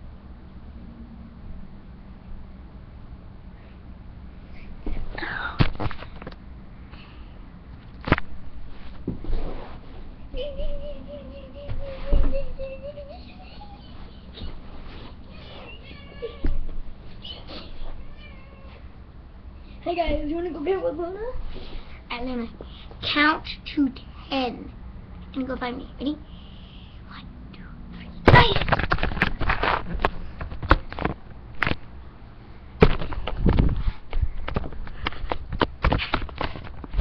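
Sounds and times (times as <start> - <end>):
cat meowing: 18.0 - 18.8.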